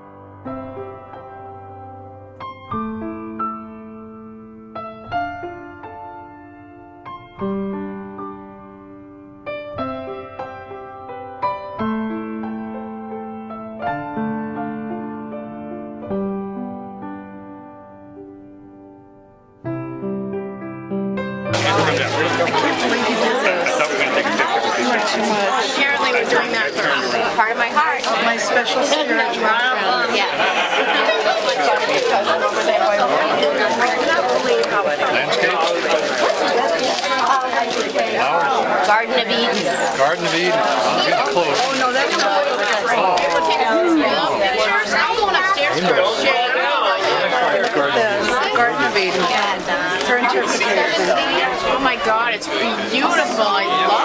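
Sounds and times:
overlapping chatter of people: 0.0 - 2.6, 5.2 - 18.4, 21.5 - 54.0.

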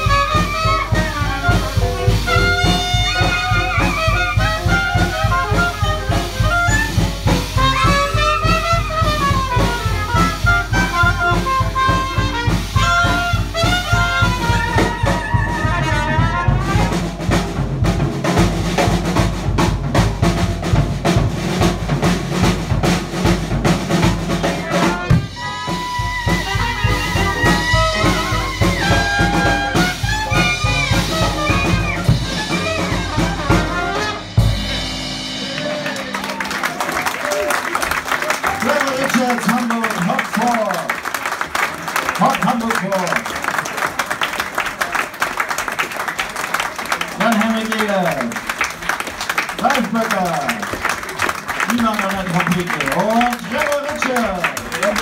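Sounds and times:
clarinet: 0.0 - 17.0, 24.4 - 34.4
piano: 0.0 - 42.1
drum kit beat: 0.0 - 43.2, 47.1 - 55.0.

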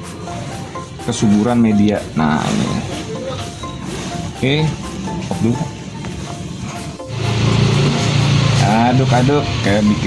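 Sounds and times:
background music with bass: 0.0 - 10.0
hands stirring dry husk: 0.0 - 10.0
person speaking: 0.8 - 6.1.

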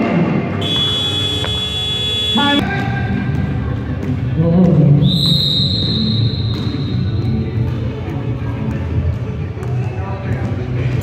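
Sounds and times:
referee's whistle blast: 0.6 - 2.6, 5.1 - 7.0
murmur of voices: 5.9 - 11.0.

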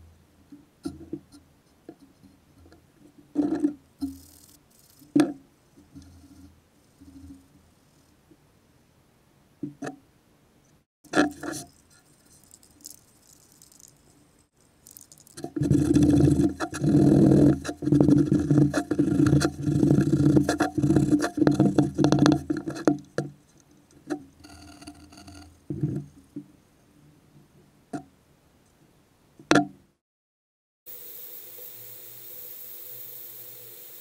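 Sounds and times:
metal buckle rubbed with rag: 11.1 - 16.9.

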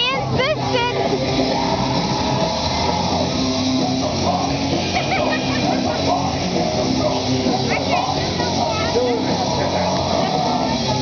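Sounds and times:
distant crowd voices: 0.0 - 11.0.

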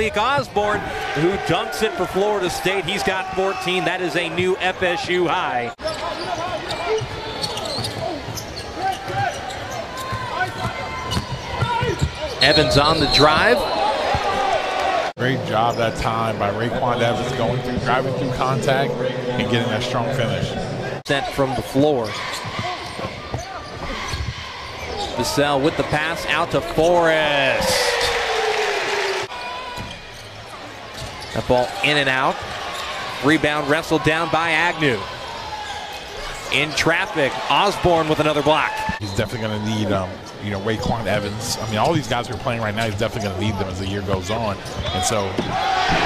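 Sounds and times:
arena crowd noise: 0.0 - 46.0
sneakers squeaking: 5.8 - 14.5, 21.5 - 26.3, 29.4 - 33.5, 34.8 - 39.5, 40.2 - 46.0.

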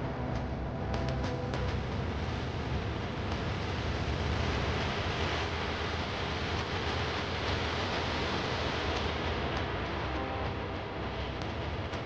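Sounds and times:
deep rumble: 0.0 - 5.1
steady rushing noise: 0.0 - 12.0.

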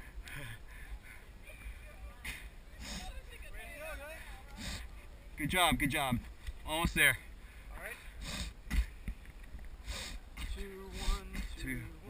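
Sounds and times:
heavy breathing: 0.0 - 3.2, 4.2 - 5.1, 7.4 - 9.1, 9.8 - 11.6.

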